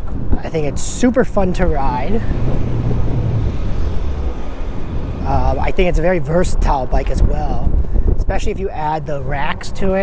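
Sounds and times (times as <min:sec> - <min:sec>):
tires rolling on pavement: 0:00.0 - 0:10.0
wind rumble: 0:00.0 - 0:10.0.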